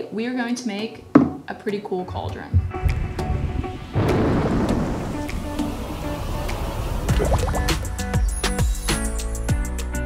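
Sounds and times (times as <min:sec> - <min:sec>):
light background music: 0:00.0 - 0:10.0
thunder rumble: 0:02.6 - 0:08.0
steady rain: 0:03.7 - 0:07.1.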